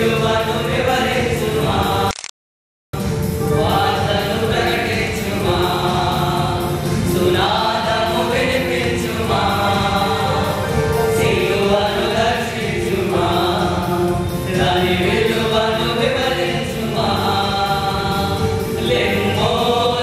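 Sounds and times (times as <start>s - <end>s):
male choir singing: 0.0s - 2.1s, 3.5s - 20.0s.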